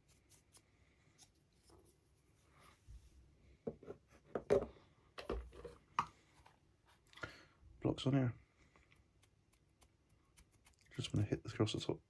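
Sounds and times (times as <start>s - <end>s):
parts knocking on a cutting mat: 3.6s - 5.5s.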